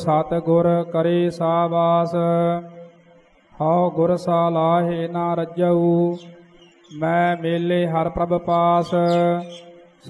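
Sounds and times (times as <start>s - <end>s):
solo voice chanting: 3.6s - 9.7s.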